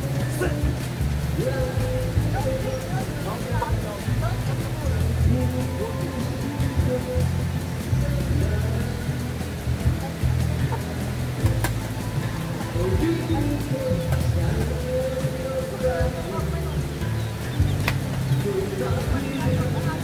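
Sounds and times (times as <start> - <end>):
background music: 0.0 - 20.0
voices: 0.0 - 20.0.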